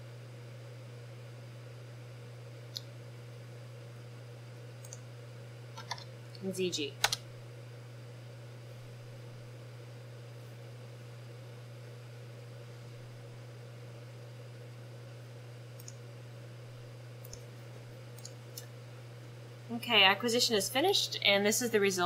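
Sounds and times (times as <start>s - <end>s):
steady low hum: 0.0s - 22.0s
faint clicks: 15.8s - 16.0s.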